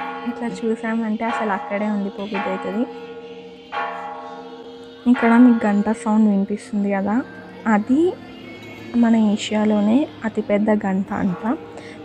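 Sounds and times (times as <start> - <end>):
large temple bell ringing: 0.0 - 12.0.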